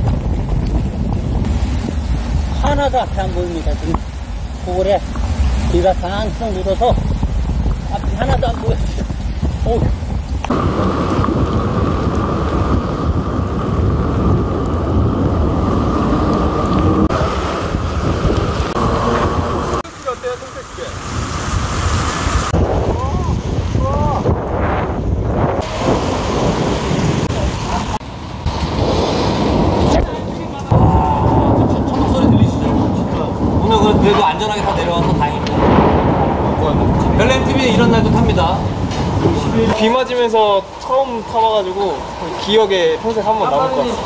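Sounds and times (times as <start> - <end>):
wind noise on microphone: 0.0 - 19.8, 21.0 - 39.9
heavy rain: 0.0 - 44.0
tyres hissing on wet road: 0.7 - 24.1, 25.6 - 44.0.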